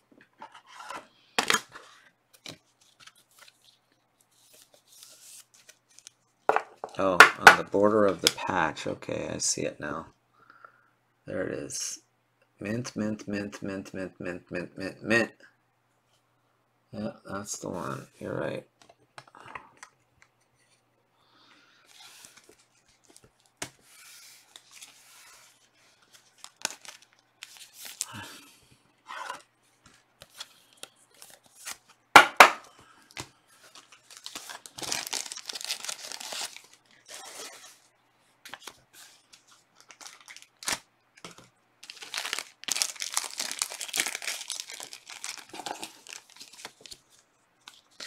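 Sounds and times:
cards rustling and clicking: 21.9 - 28.1, 38.4 - 48.0
wrappers tearing and crinkling: 26.2 - 28.2, 33.7 - 37.7, 39.2 - 40.9, 41.8 - 48.0.

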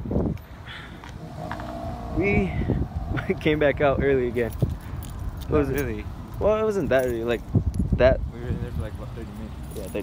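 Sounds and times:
wind on microphone: 0.0 - 9.2
traffic rumble: 0.0 - 10.0.

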